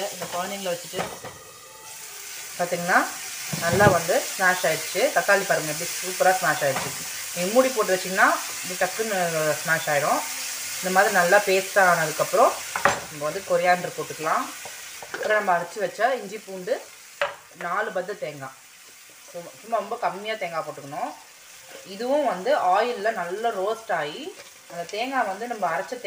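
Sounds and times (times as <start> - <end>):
sauce sizzling in a frying pan: 0.0 - 26.0
woman speaking: 2.6 - 6.8, 21.8 - 26.0.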